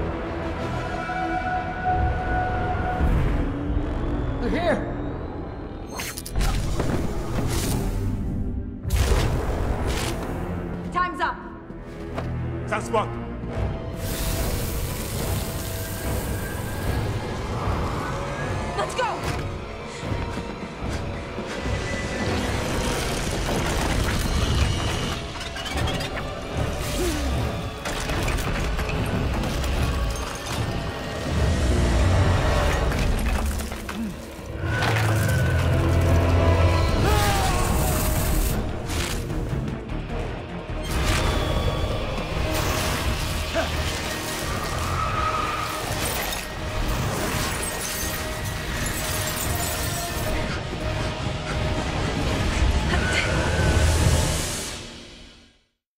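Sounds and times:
dramatic orchestral score: 0.0 - 55.6
ice cracking and shattering: 32.5 - 36.5, 42.5 - 50.3.

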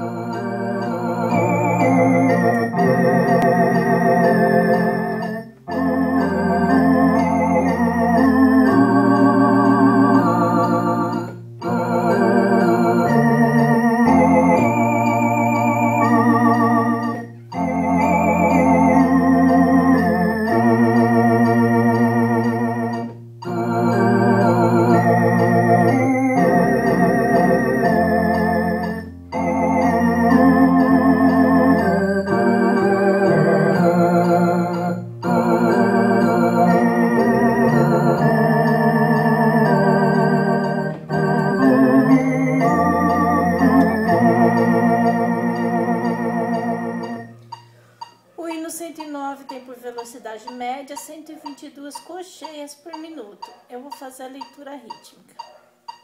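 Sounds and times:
electronic organ playing a hymn: 0.0 - 48.2.

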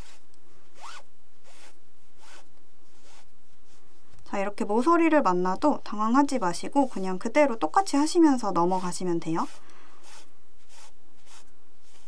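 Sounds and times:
zip-like rasps: 0.0 - 3.3, 8.8 - 12.0
yarn pulled through knitting: 5.9 - 12.0.

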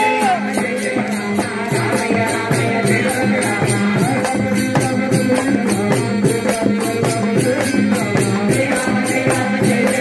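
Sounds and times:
men singing devotional chant: 0.0 - 10.0.

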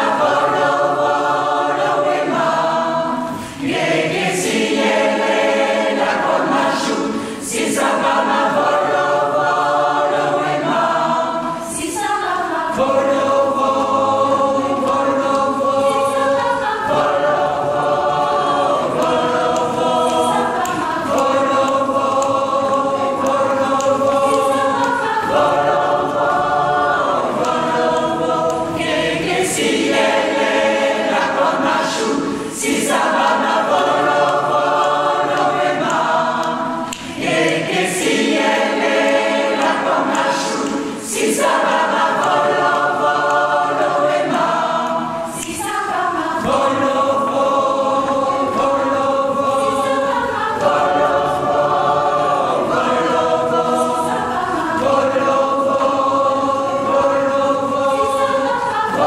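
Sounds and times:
mixed choir singing: 0.0 - 59.0.

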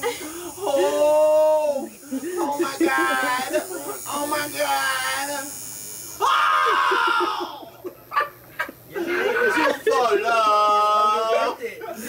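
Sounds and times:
man crying out in pain: 6.2 - 7.8.

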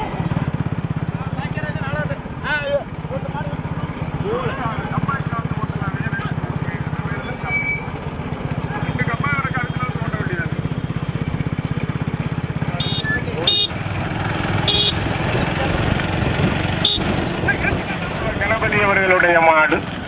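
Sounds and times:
motorcycle engine running: 0.0 - 20.0.

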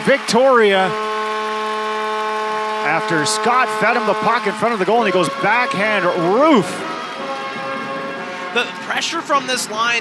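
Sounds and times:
crowd noise: 0.0 - 10.0
arena goal horn chord: 0.1 - 10.0.

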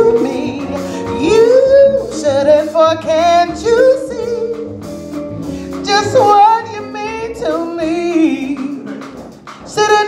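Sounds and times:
woman singing jazz ballad: 0.0 - 5.0, 5.7 - 10.0
bass: 0.0 - 10.0
jazz guitar: 0.0 - 10.0.

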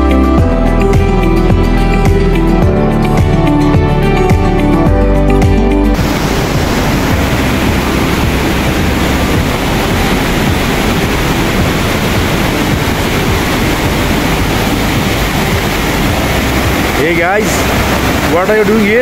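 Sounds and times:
stream rushing over rocks: 5.9 - 19.0.

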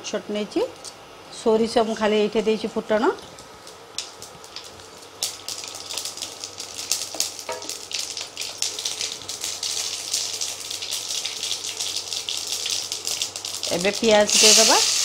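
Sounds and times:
oil sizzling: 1.3 - 15.0
seeds popping in hot oil: 3.4 - 15.0.

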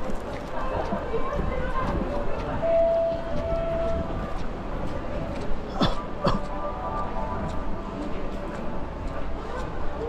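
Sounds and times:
indistinct voices of passersby: 0.0 - 10.0
low traffic rumble: 0.0 - 10.0.

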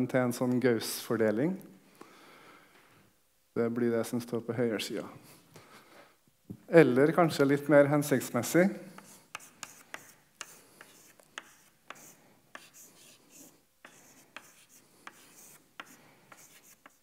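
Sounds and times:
chalk tapping and scratching: 8.9 - 17.0.

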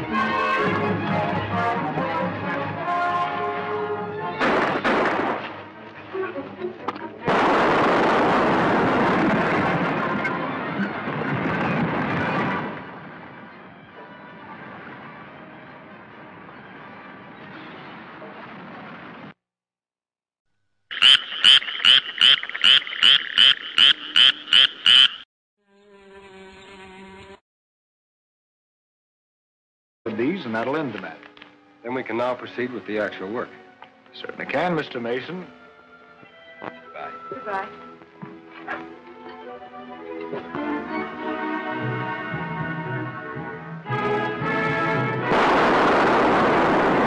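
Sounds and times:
explosion: 4.4 - 5.6, 7.3 - 13.0, 45.2 - 47.0
dramatic orchestral music: 39.1 - 45.4.

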